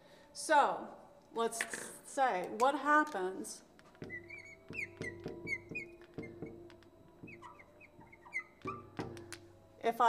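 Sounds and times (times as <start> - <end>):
soft background music: 0.0 - 10.0
marker squeaking on glass: 3.9 - 9.4.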